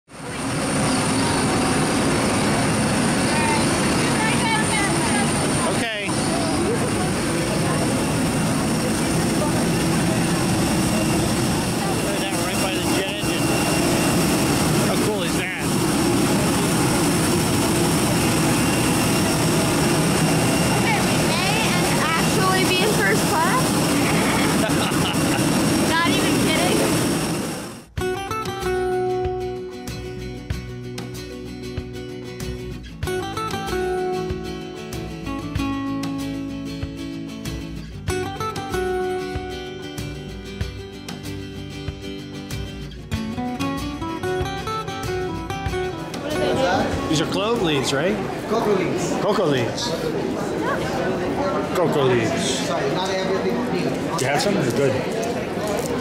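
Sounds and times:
jet engine high whine: 0:00.1 - 0:28.0
faint voices: 0:00.2 - 0:27.4, 0:46.0 - 0:56.0
acoustic guitar music: 0:00.3 - 0:26.9, 0:27.9 - 0:56.0.

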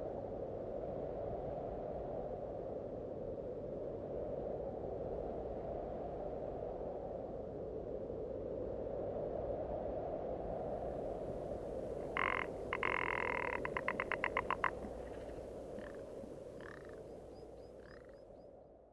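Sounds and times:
cold wind: 0:00.0 - 0:18.9
bird croaks: 0:12.0 - 0:18.3
bird rattle of clicks: 0:12.2 - 0:14.9.

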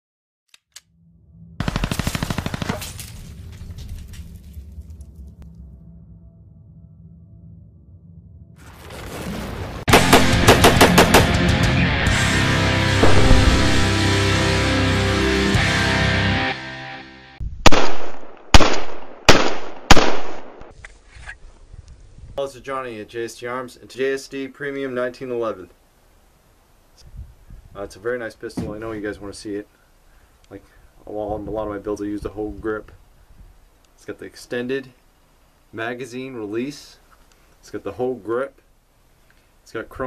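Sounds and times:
low rumble: 0:00.9 - 0:08.7, 0:12.8 - 0:14.5
rapid automatic gunfire: 0:01.6 - 0:02.8, 0:09.9 - 0:11.4
pistol shots echoing: 0:09.9 - 0:11.4, 0:17.7 - 0:20.7.

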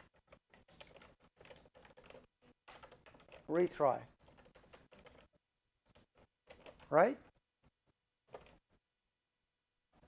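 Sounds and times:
rapid typing on computer keyboard: 0:00.0 - 0:05.3, 0:05.9 - 0:07.0, 0:08.3 - 0:08.6.

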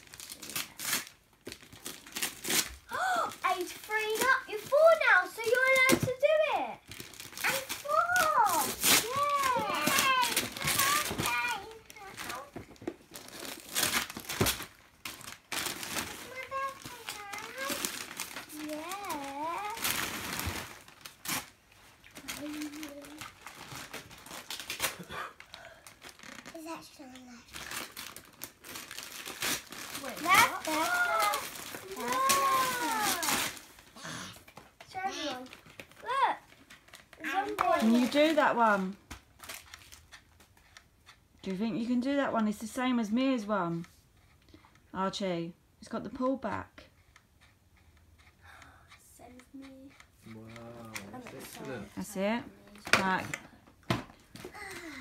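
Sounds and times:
wrapping paper tearing and crinkling: 0:00.0 - 0:40.6, 0:50.5 - 0:53.4.

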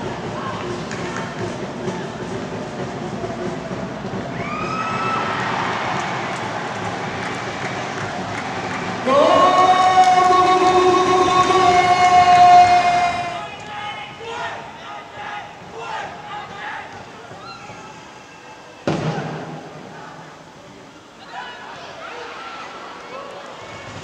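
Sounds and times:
stadium crowd noise: 0:00.0 - 0:24.0.

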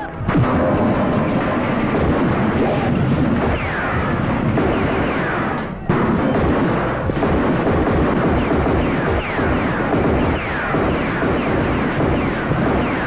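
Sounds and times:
explosion blasts and rumbling: 0:00.0 - 0:13.0.

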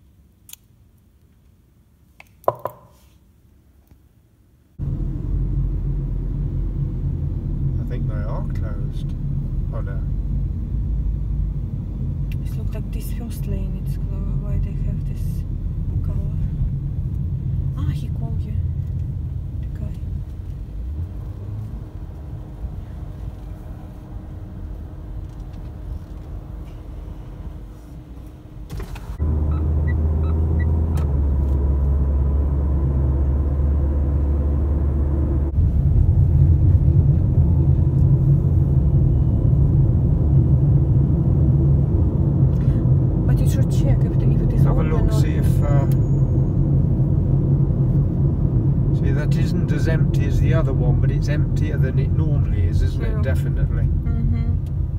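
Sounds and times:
car driving rumble: 0:04.8 - 0:54.9.

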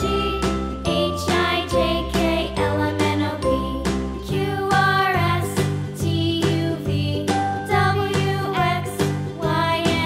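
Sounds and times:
jingle music with beat: 0:00.0 - 0:10.0.

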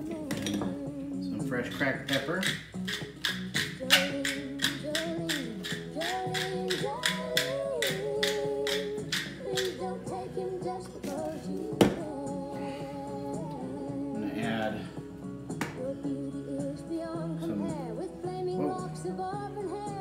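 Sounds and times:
background music with singing: 0:00.0 - 0:20.0
pepper mill grinding: 0:02.0 - 0:09.8.

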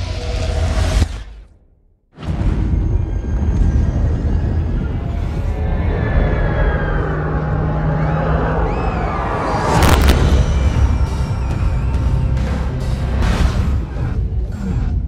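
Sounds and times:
sweeping falling tones: 0:02.4 - 0:12.8
loud hit: 0:09.5 - 0:12.4.

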